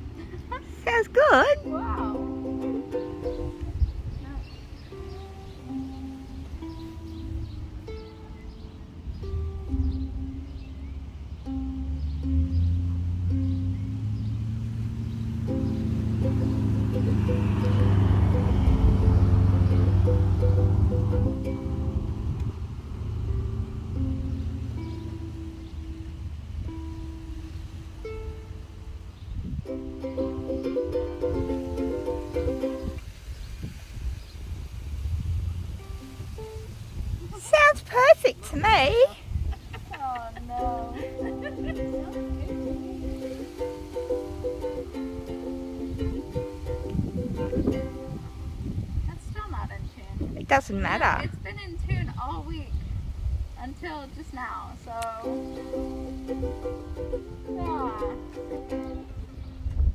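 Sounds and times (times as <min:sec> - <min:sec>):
ukulele strings plucked: 0:00.0 - 0:04.2, 0:04.9 - 0:33.1, 0:40.2 - 0:48.7, 0:54.9 - 0:59.9
ukulele chords strummed: 0:00.0 - 0:33.2, 0:40.2 - 0:48.8, 0:54.9 - 0:59.9.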